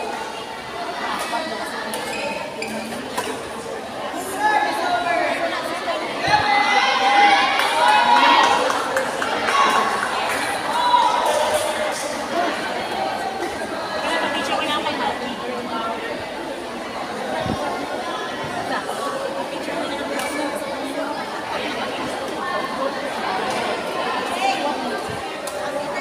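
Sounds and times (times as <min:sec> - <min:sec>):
crowd chattering indoors: 0:00.0 - 0:26.0.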